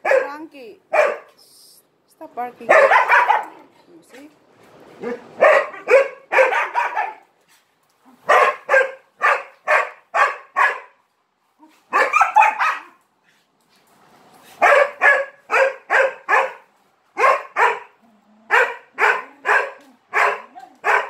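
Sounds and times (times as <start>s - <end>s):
dog barking: 0.0s - 1.4s, 2.7s - 3.6s, 5.0s - 7.3s, 8.2s - 11.0s, 11.9s - 13.0s, 14.6s - 21.0s.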